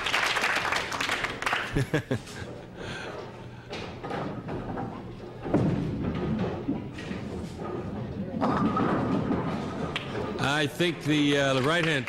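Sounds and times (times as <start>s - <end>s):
bowling ball rolling: 0.9s - 10.5s
bowling pins knocking: 2.2s - 10.7s
bowling ball thud on lane: 8.4s - 10.4s.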